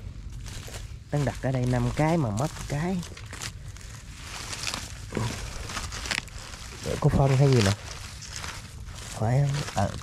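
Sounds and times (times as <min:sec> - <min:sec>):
dry palm fronds rustling: 0:00.0 - 0:10.0.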